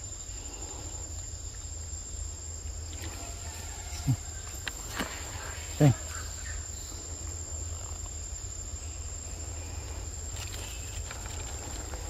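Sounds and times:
high-pitched insect drone: 0.0s - 12.0s
faint clicks and rustles: 10.1s - 12.0s.

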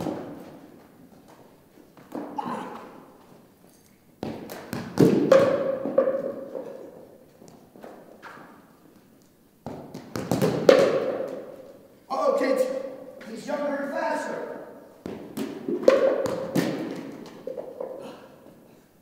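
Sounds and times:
soccer balls thudding: 0.0s - 3.4s, 4.2s - 11.7s, 15.0s - 18.1s.

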